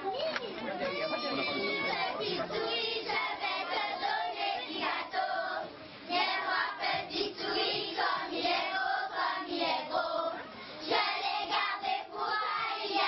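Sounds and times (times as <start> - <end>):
children singing in chorus: 1.3 - 13.0.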